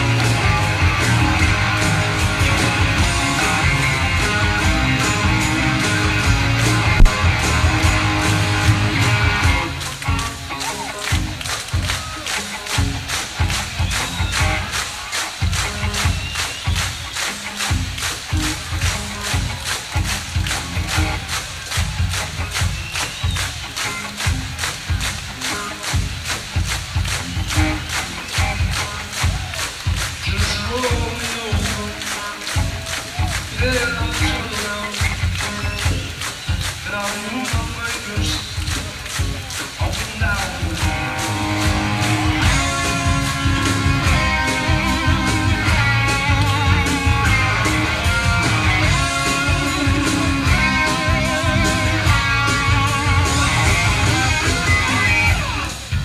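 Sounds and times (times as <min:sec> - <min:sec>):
drums driving beat: 0:00.0 - 0:56.0
electric guitar: 0:00.0 - 0:56.0.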